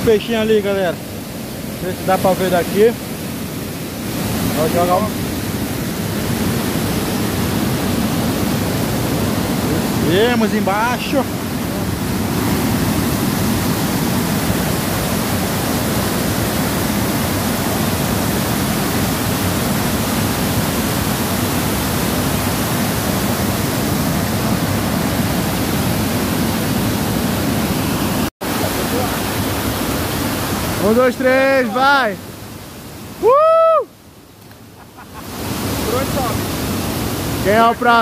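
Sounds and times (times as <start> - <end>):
waterfall rushing into pool: 0.0 - 38.0.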